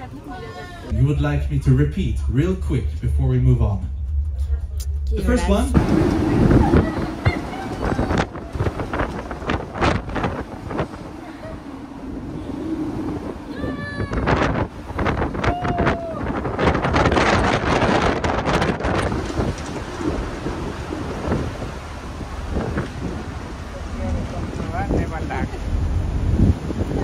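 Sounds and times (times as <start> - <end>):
people talking: 0.0 - 9.1, 23.7 - 25.6
wind buffeting microphone: 0.0 - 27.0
people laughing: 11.1 - 11.8.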